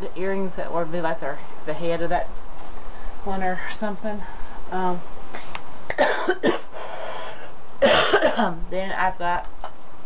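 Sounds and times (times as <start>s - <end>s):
woman coughing: 5.9s - 6.7s, 7.8s - 8.6s.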